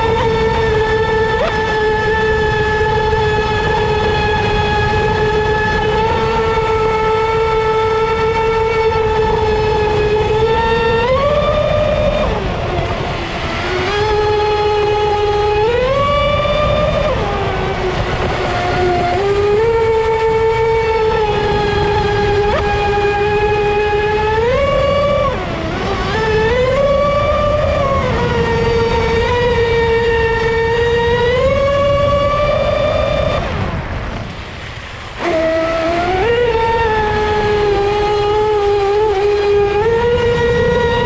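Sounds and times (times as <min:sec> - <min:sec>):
constant low noise: 0:00.0 - 0:41.0
electric motor whine: 0:00.0 - 0:41.0.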